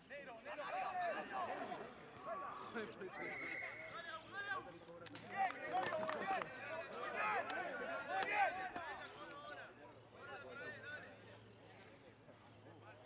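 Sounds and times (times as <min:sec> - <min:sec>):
rugby players shouting: 0:00.1 - 0:04.7, 0:05.3 - 0:11.1.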